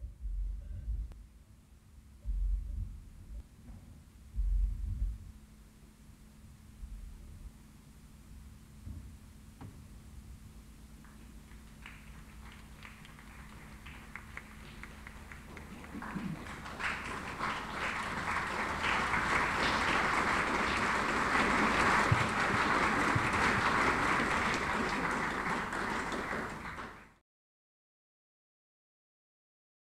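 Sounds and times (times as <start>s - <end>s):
audience applause: 11.5s - 27.2s.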